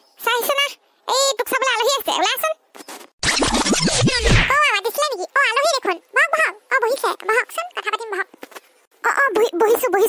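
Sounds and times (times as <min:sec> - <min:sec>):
high-pitched cartoon voice talking: 0:00.2 - 0:02.6, 0:03.6 - 0:08.3, 0:09.0 - 0:10.0
record scratch effect: 0:03.2 - 0:04.6.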